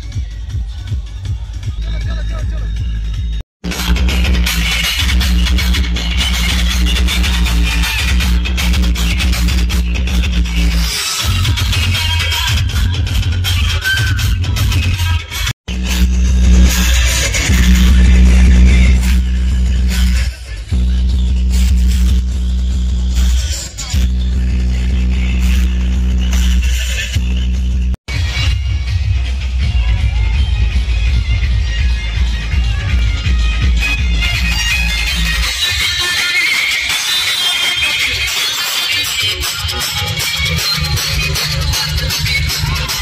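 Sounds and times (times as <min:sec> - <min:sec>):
loud dance music with heavy bass: 0:00.0 - 0:43.0.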